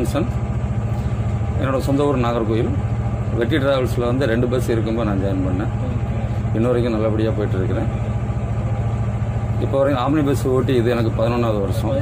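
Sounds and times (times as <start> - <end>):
large vehicle engine idling: 0.0 - 12.0.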